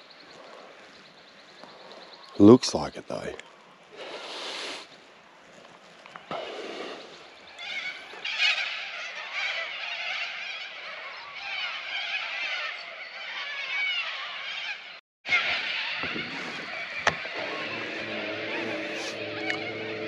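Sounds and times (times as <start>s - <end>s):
birds dawn chorus: 0.0s - 20.0s.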